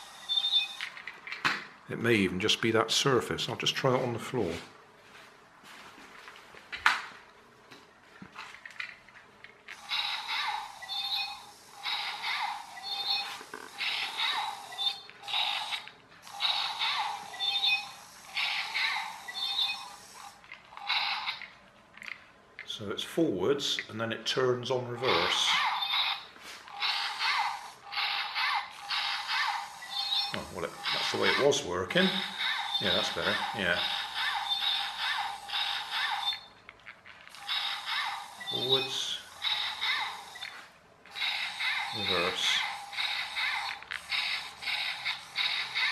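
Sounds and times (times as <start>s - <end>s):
toy robot motor and gears whirring: 0.0s - 1.6s, 8.5s - 23.1s, 24.9s - 45.9s.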